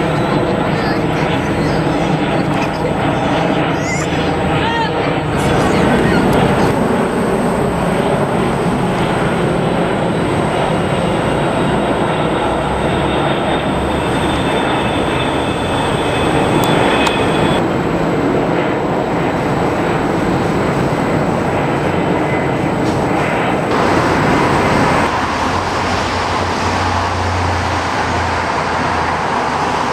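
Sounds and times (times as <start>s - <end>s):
jet airliners passing overhead: 0.0s - 29.9s.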